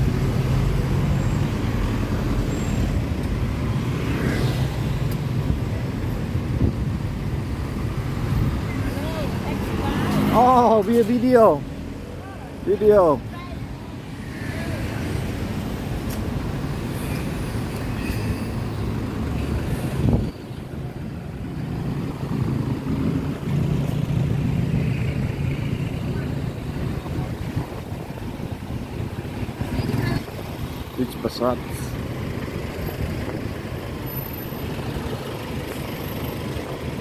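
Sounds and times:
street traffic engine rumble: 0:00.0 - 0:37.0.

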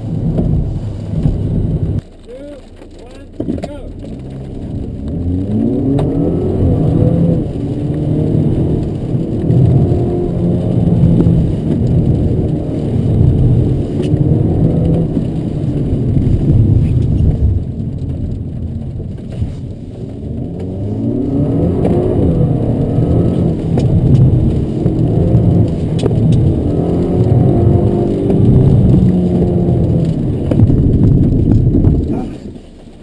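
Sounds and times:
car engine accelerating: 0:00.0 - 0:33.0.

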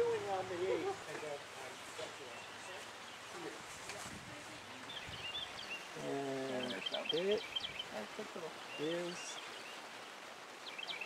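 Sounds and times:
small birds chirping: 0:00.0 - 0:03.7, 0:04.4 - 0:11.0.

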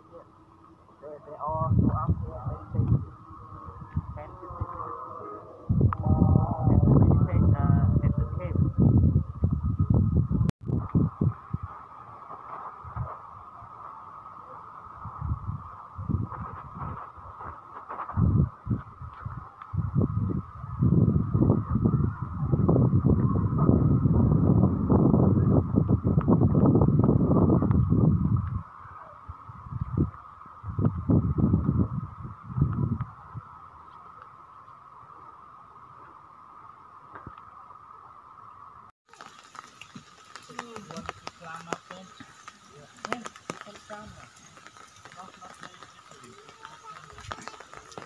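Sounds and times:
wind buffeting microphone: 0:01.0 - 0:14.0, 0:14.8 - 0:33.9, 0:39.2 - 0:48.0.

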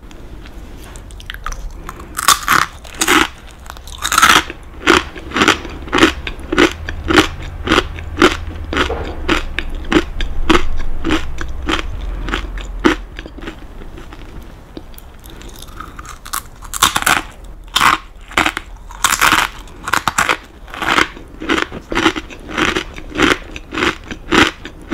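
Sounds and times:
rice cracker crunching: 0:01.0 - 0:24.9.

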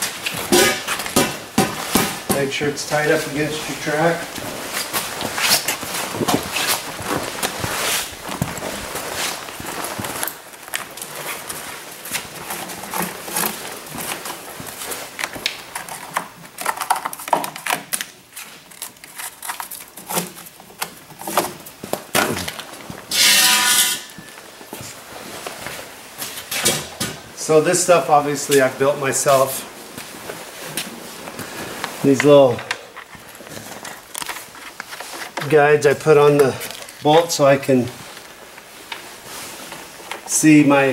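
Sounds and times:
tools clattering on metal: 0:00.4 - 0:02.4.

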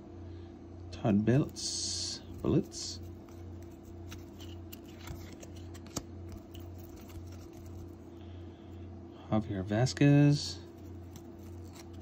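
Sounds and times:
cards scraping against cards: 0:02.2 - 0:08.0, 0:10.7 - 0:12.0.

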